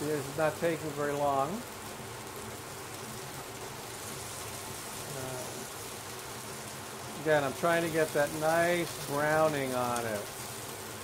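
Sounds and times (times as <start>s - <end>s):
meat sizzling in a hot pan: 0.0s - 11.0s.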